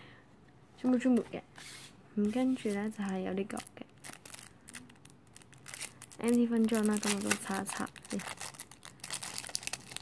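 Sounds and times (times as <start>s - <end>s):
cellophane packaging crinkling: 2.3s - 10.0s.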